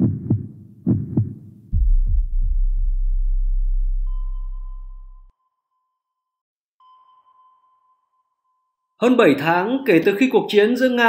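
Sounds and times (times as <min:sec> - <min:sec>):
deep low drone: 0:01.8 - 0:05.3
sonar-style pings: 0:04.0 - 0:09.0.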